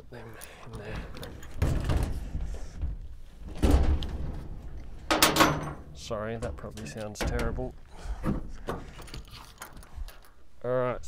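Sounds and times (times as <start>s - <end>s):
heavy thuds: 0.8s - 9.2s.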